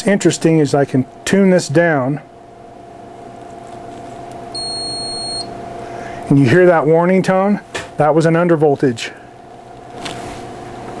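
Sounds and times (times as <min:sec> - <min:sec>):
electrical hum: 0:00.0 - 0:11.0
high electronic beep: 0:04.6 - 0:05.5.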